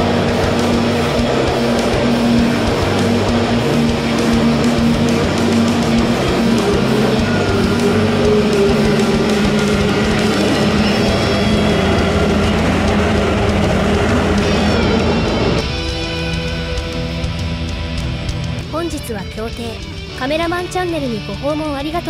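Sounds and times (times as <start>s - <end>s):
boat outboard motors running: 0.0s - 22.0s
electric guitar rock music: 0.0s - 22.0s.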